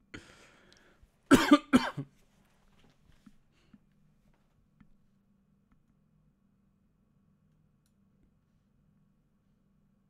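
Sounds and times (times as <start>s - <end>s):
man coughing: 1.3s - 2.1s.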